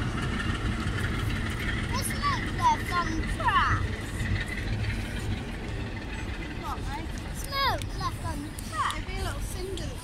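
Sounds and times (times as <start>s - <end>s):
steady low rumble: 0.0s - 10.0s
people talking: 1.9s - 4.3s, 6.4s - 10.0s.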